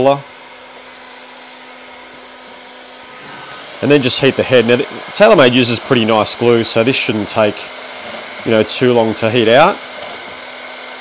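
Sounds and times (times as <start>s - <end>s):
heat gun fan blowing: 0.0s - 11.0s.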